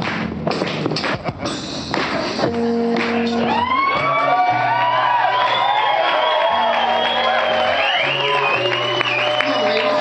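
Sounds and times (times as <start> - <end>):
low bass notes: 0.0 - 10.0.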